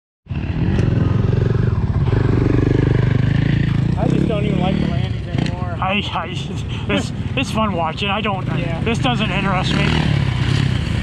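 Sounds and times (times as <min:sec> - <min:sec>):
dirt bike engine running: 0:00.3 - 0:06.1
voices: 0:03.4 - 0:10.2.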